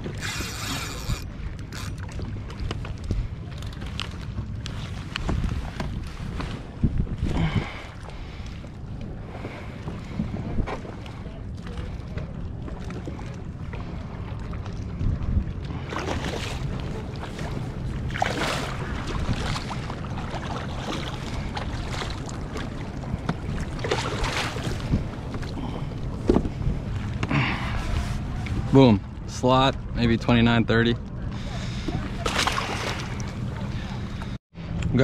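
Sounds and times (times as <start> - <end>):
wind buffeting microphone: 0.0 - 34.4
fish splashing in water: 32.2 - 33.4.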